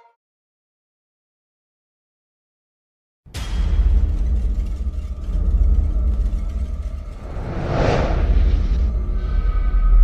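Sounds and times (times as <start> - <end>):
deep low rumble: 3.5 - 10.0.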